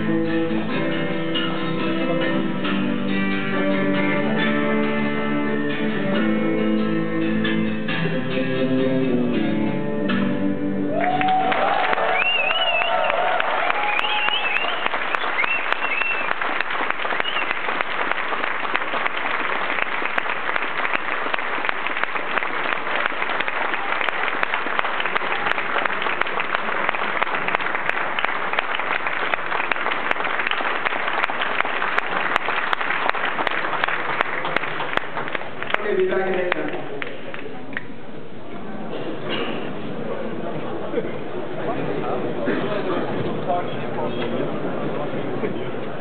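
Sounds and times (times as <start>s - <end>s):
audience applauding: 10.9s - 37.9s.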